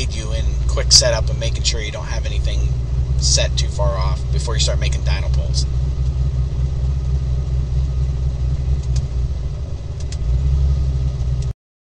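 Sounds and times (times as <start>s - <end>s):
car engine idling: 0.0s - 11.5s.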